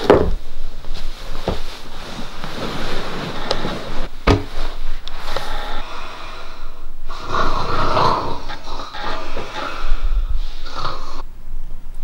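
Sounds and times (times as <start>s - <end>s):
person snoring: 5.2s - 11.2s.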